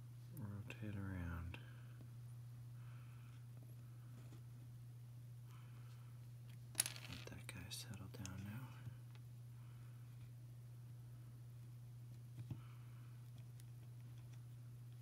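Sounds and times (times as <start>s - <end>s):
steady low hum: 0.0s - 15.0s
person whispering: 7.3s - 8.9s.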